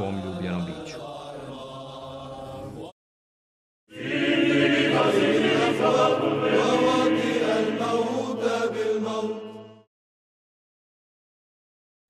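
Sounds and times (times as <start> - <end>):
choir chanting: 0.0 - 3.0, 3.9 - 9.9.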